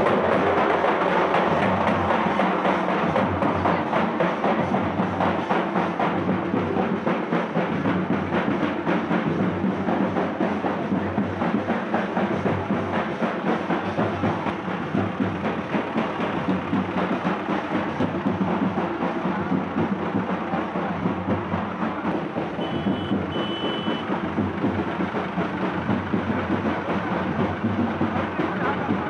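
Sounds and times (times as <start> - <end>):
vehicle engine running: 0.0 - 29.0
procession music: 22.4 - 24.4
short high beeps: 22.6 - 24.0.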